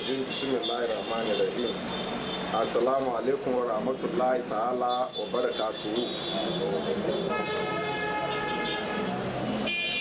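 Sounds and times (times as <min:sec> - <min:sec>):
murmur of background voices: 0:02.5 - 0:09.7
vehicle horn blast: 0:07.3 - 0:10.0.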